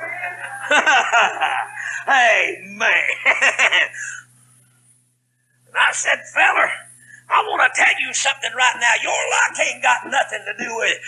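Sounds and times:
man laughing exclamation: 0.0 - 2.2
man speaking: 1.7 - 3.4, 5.7 - 11.0.

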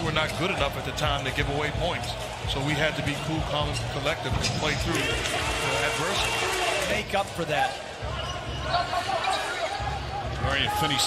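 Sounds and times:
arena game noise: 0.0 - 11.0.

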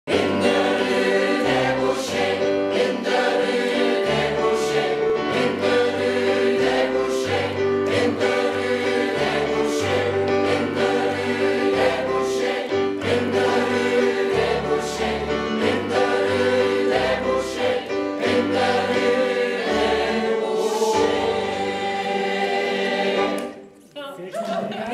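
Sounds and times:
mixed choir singing: 0.1 - 23.7.

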